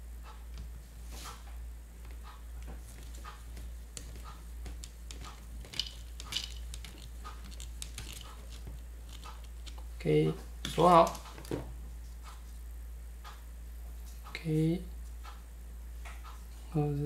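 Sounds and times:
steady low hum: 0.0 - 17.0
plastic parts clicking: 5.1 - 9.8.

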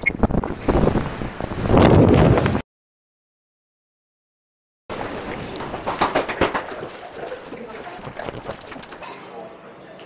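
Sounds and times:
wind buffeting microphone: 0.0 - 2.6, 7.9 - 9.0.

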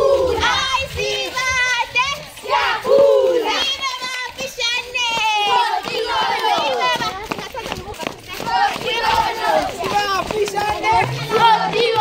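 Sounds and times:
children shouting: 0.0 - 12.0
footsteps on brick paving: 0.0 - 12.0.

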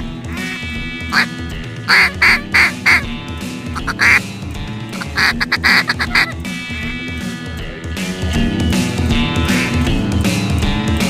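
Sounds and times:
background music: 0.0 - 11.0
duck quacking: 0.3 - 3.1, 3.8 - 4.2, 5.0 - 6.4.

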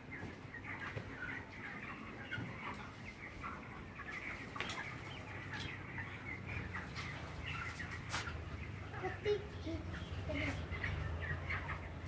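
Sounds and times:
chicks peeping and chirping: 0.0 - 12.0.

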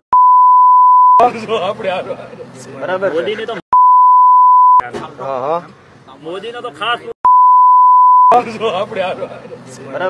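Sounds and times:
censor bleep: 0.2 - 1.2, 3.8 - 4.8, 7.3 - 8.4.

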